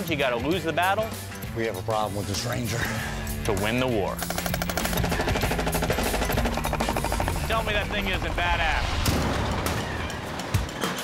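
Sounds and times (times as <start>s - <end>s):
paintball gun rapid firing: 4.2s - 7.7s.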